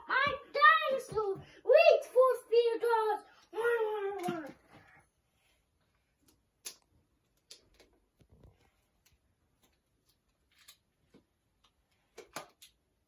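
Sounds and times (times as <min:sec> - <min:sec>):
plastic toys clicking and knocking: 0:06.2 - 0:08.0, 0:09.1 - 0:12.9.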